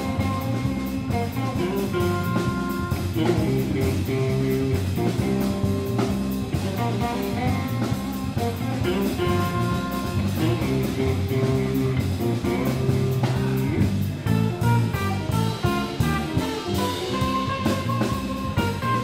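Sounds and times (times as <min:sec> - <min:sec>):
electric guitar long notes: 0:00.0 - 0:19.0.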